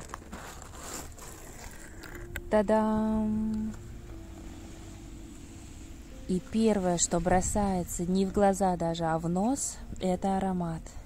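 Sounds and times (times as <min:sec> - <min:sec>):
cardboard box lid scraping: 0:00.0 - 0:02.3.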